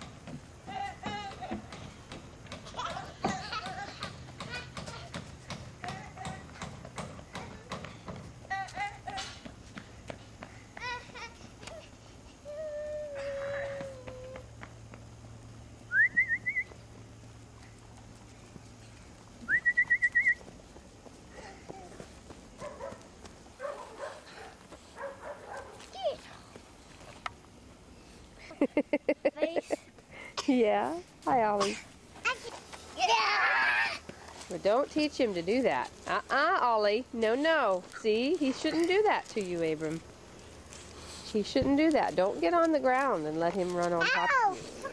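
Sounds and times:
person whistling rising note: 0:15.9 - 0:16.7
children calling: 0:31.5 - 0:34.2, 0:43.9 - 0:44.9.

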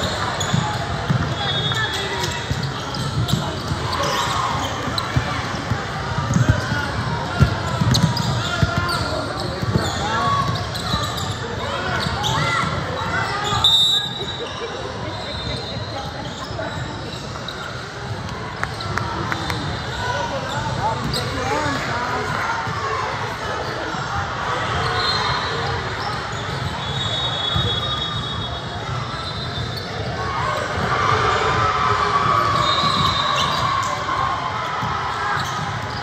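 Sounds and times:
indistinct shouts and chatter: 0:00.0 - 0:36.0.

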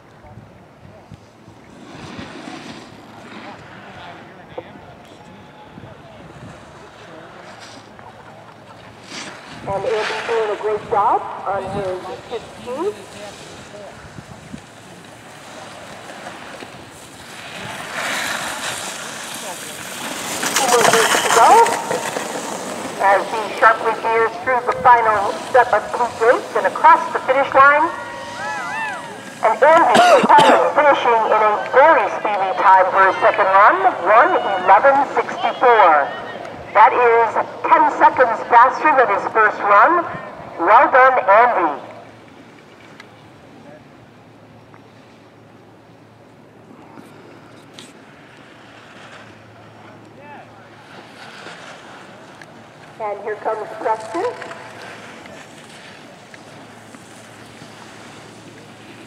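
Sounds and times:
people calling out and talking: 0:20.4 - 0:42.0.

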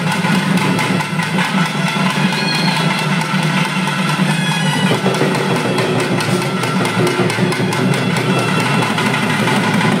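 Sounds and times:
high held instrument notes: 0:00.0 - 0:10.0
rapid drumming on barrel drums: 0:00.0 - 0:10.0.

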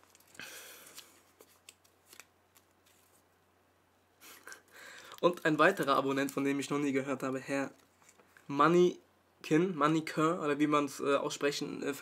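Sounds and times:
paper slip crinkling: 0:00.0 - 0:03.3, 0:04.4 - 0:06.8.

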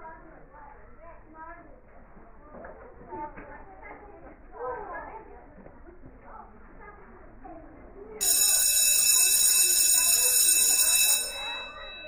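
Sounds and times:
school bell ringing: 0:08.2 - 0:12.0
voices chattering: 0:08.2 - 0:12.0.

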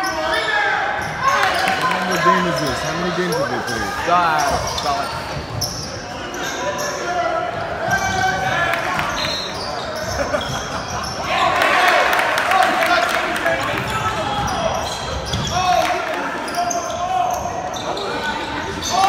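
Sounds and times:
sneakers squeaking on wooden floor: 0:00.0 - 0:11.2, 0:13.8 - 0:15.8
crowd voices: 0:00.0 - 0:19.0.

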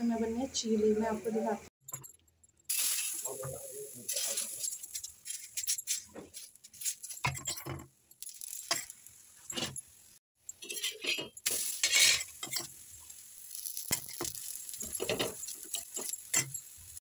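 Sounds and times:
batter sizzling on griddle: 0:02.7 - 0:17.0
spoon clinking on griddle: 0:10.4 - 0:12.8, 0:13.6 - 0:17.0.

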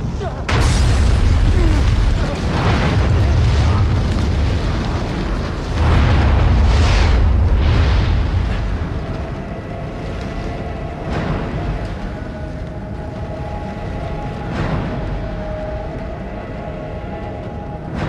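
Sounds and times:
explosion blasts: 0:00.0 - 0:16.2
deep rumble: 0:00.0 - 0:18.0.

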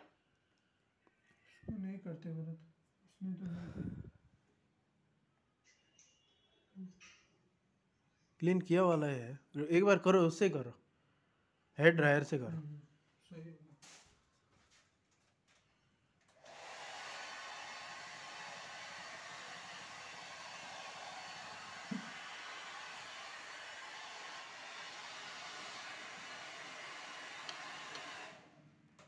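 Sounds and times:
hair dryer blowing air: 0:16.4 - 0:28.6.

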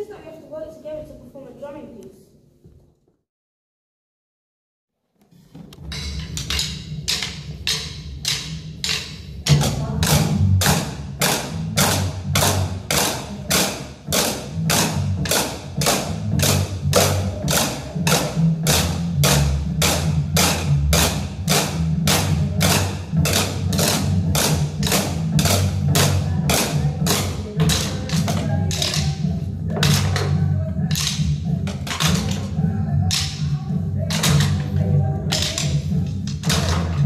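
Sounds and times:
backing music track: 0:05.6 - 0:37.0
drumsticks striking plastic chairs: 0:05.6 - 0:37.0.

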